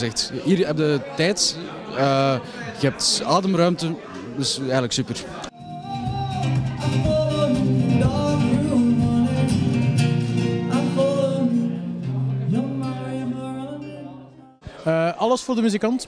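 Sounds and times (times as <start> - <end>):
person singing: 5.5 - 14.6
acoustic guitar: 5.5 - 14.9.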